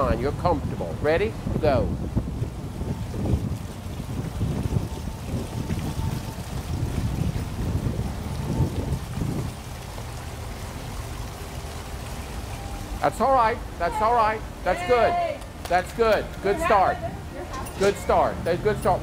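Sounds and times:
pool water sloshing and churning: 0:02.3 - 0:19.0.

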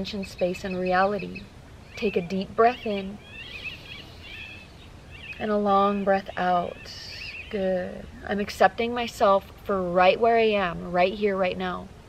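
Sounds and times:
small songbirds chirping: 0:00.0 - 0:09.4
faint outdoor background: 0:00.0 - 0:12.0.

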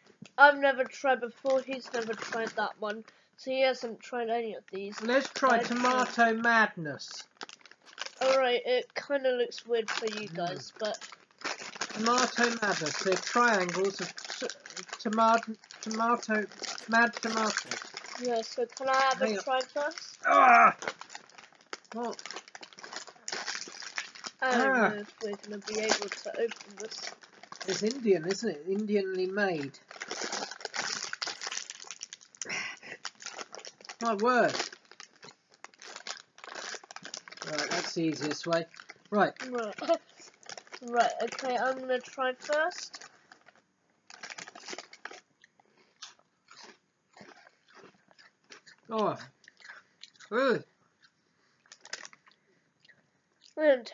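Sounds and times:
crisp packet crinkling: 0:00.0 - 0:03.2, 0:04.6 - 0:48.9, 0:51.6 - 0:52.4.

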